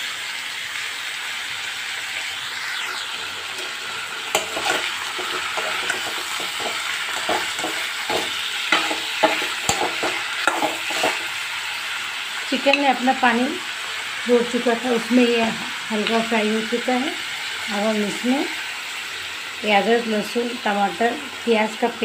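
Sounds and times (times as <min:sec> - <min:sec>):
food sizzling in oil in a wok: 0:00.0 - 0:22.0
utensil scraping and knocking pan: 0:04.3 - 0:11.4.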